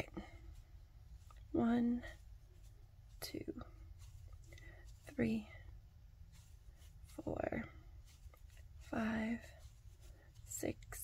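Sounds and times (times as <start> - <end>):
woman softly counting: 1.5 - 2.2.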